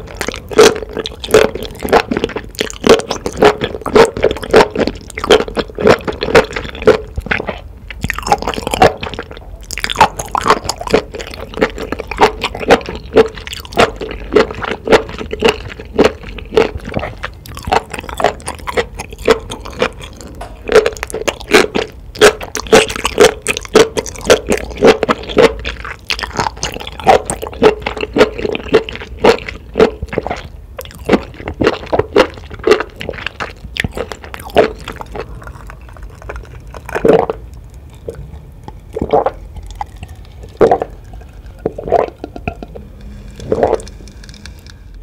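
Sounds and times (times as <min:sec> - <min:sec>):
wet chewing: 0:00.0 - 0:44.8.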